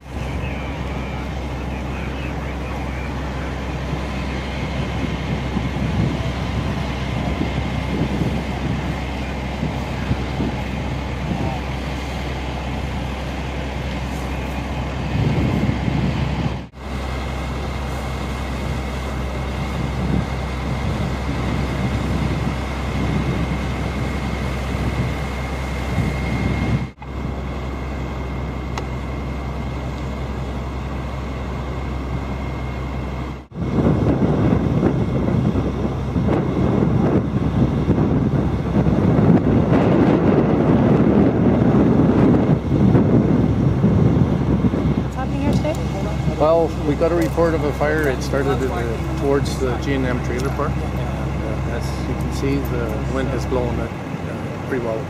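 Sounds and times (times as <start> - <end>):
engine rumble with whine: 0.0 - 55.0
wind on microphone: 2.4 - 16.8, 17.7 - 27.0, 33.3 - 55.0.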